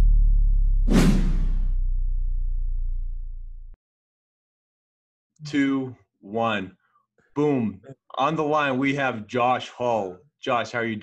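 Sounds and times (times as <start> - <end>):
whoosh sound effect: 0.9 - 1.8.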